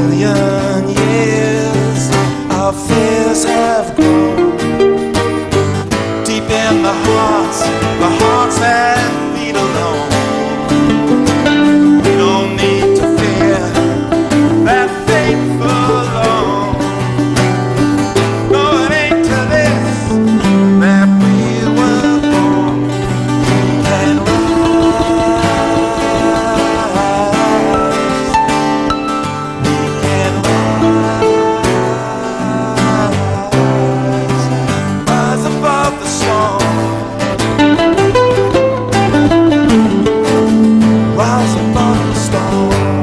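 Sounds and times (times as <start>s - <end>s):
acoustic guitars strumming: 0.0s - 43.0s
bass line: 0.0s - 43.0s
percussion: 0.0s - 43.0s
lead instrument melody: 2.9s - 34.2s, 36.7s - 41.6s.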